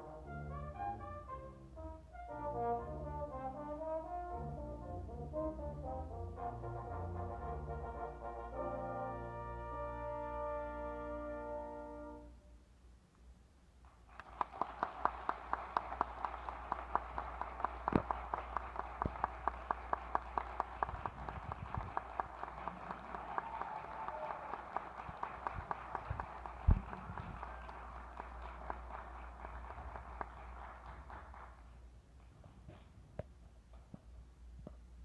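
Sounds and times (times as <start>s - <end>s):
audience applauding: 14.0s - 31.8s
close claps in even beat: 14.1s - 31.8s.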